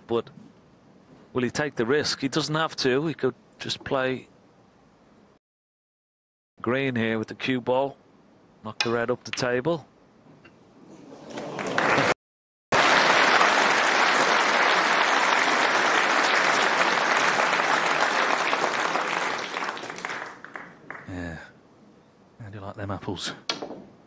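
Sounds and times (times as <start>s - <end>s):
audience applauding: 11.3s - 21.2s.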